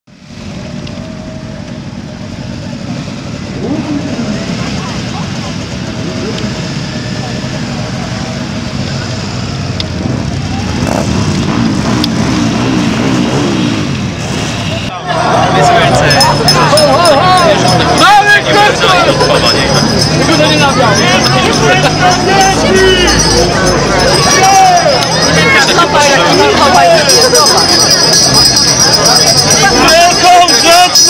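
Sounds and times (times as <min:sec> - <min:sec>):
crowd voices: 0:00.1 - 0:31.0
motorcycles riding past: 0:00.5 - 0:18.0.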